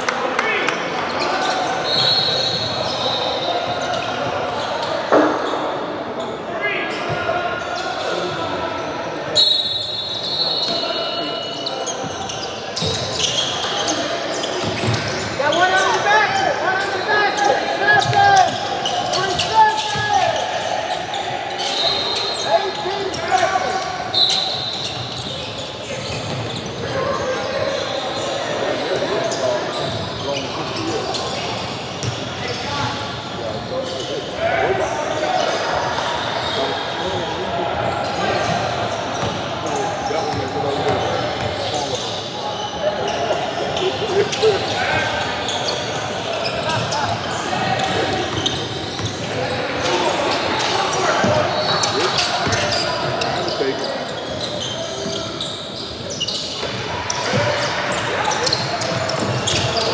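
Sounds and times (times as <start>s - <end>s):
sneakers squeaking: 0.6s - 59.9s.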